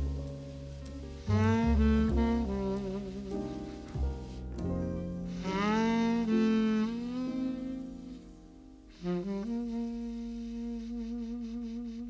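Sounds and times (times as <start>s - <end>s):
horn playing jazz melody: 0.0s - 4.6s, 5.2s - 12.0s
bass line: 0.0s - 12.0s.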